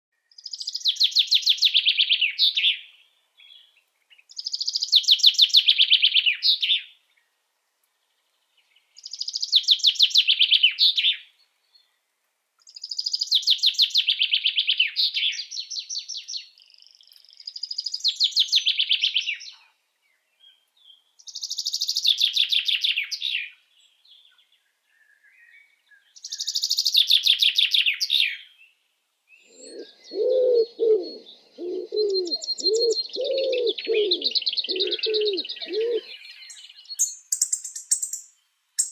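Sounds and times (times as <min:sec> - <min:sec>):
low pulsing bird call: 0:29.4 - 0:38.2
songbird trilling: 0:29.4 - 0:38.9.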